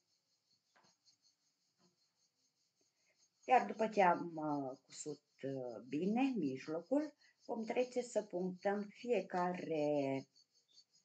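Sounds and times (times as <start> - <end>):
faint rustle of yarn: 0.0 - 11.0.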